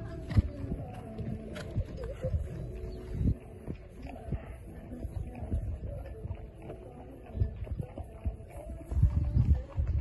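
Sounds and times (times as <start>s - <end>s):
horse hoofbeats on sand: 0.0s - 10.0s.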